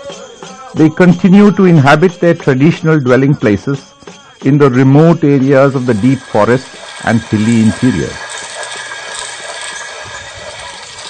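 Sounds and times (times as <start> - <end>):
stone quern grinding grain: 5.4 - 11.0.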